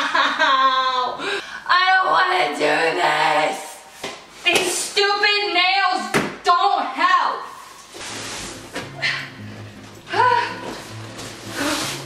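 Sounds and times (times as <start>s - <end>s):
bass line background music: 8.0s - 12.0s.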